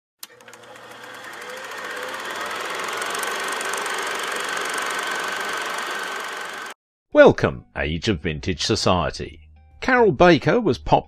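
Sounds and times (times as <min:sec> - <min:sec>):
film projector clatter: 0:00.2 - 0:06.8.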